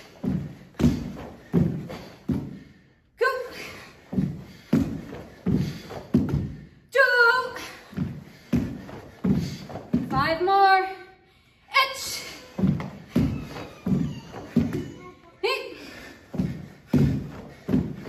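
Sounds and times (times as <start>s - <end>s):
bare feet thudding on wooden floor: 0.0s - 2.8s, 3.5s - 6.8s, 7.6s - 10.5s, 12.2s - 18.0s.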